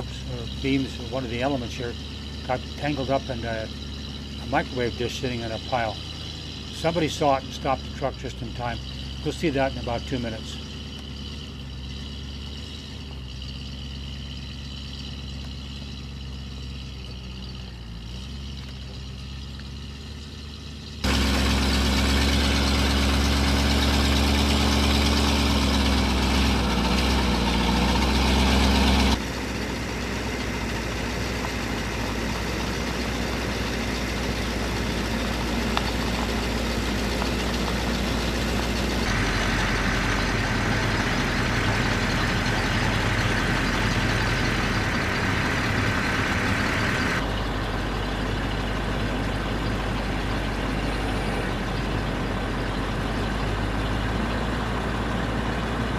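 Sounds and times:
truck engine running: 0.0 - 55.9.

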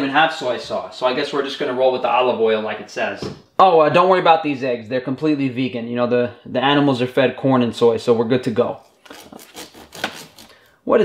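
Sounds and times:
knife scraping and sawing: 8.9 - 10.7.

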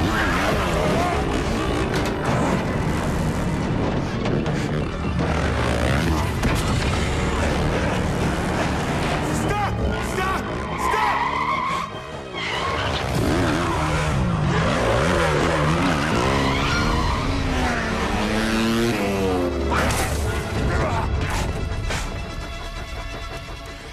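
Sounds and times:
dirt bike engine revving: 0.0 - 10.8, 12.6 - 20.0
film music score: 0.0 - 23.9
tyres skidding: 0.0 - 23.9.

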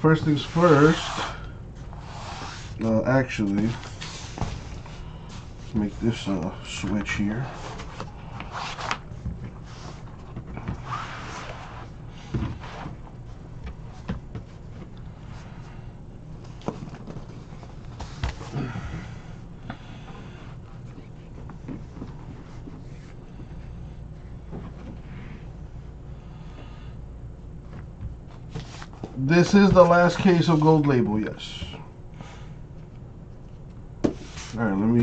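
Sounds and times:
faint low hum: 0.0 - 35.0
rubber mat being smoothed: 2.0 - 2.8.

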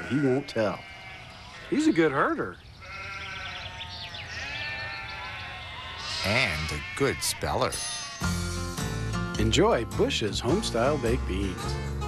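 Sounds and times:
sheep bleating: 0.0 - 1.9, 2.8 - 8.6.

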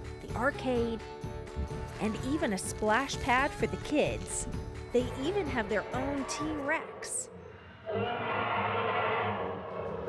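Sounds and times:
dinosaur roar over loudspeakers: 7.8 - 10.0.

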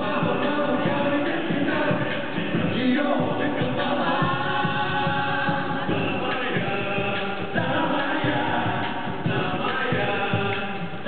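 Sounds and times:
men singing over loudspeakers: 0.0 - 11.0.

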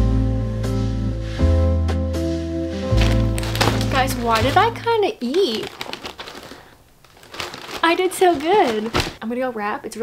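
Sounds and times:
wrapping paper crinkling: 3.0 - 9.2.

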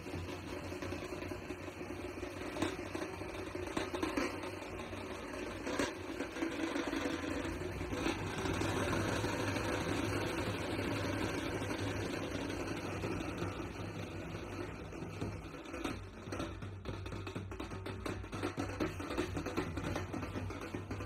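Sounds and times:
vehicle engine running: 0.0 - 21.0.

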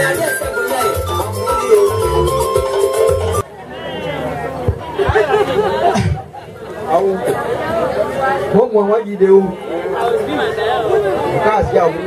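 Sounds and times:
people talking and chattering: 0.0 - 12.0.

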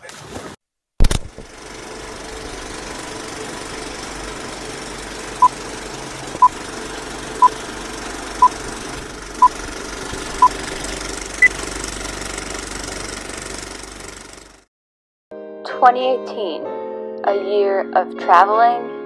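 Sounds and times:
noisy rattly hum: 1.0 - 14.7.

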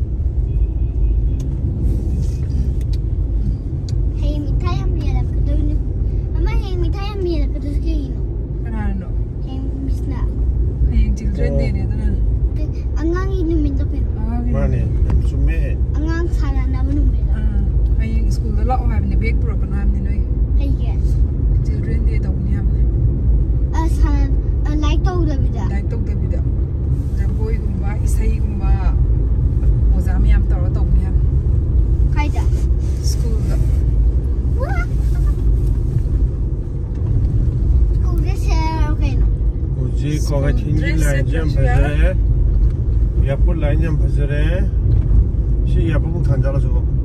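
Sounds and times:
car cabin road and engine rumble: 0.0 - 47.0
people talking: 6.4 - 8.1, 10.9 - 22.8, 23.8 - 26.5, 27.2 - 29.0, 29.9 - 31.2, 32.2 - 33.8, 34.6 - 35.4, 38.0 - 42.2.

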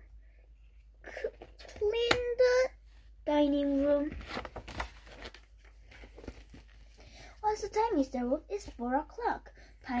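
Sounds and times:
book pages rustling: 3.4 - 7.0.

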